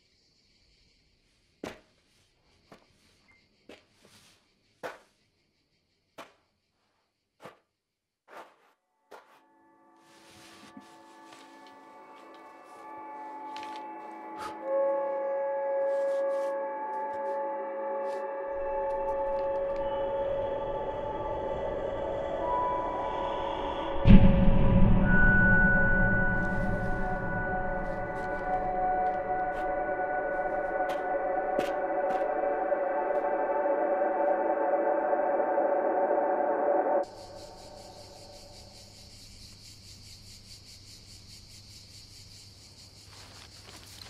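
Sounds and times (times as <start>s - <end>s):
insects chirping: 0.0s - 35.9s, 36.5s - 44.0s
higher synth tone: 13.8s - 37.0s
held synth tones: 14.2s - 37.0s
low rumble: 19.8s - 37.0s.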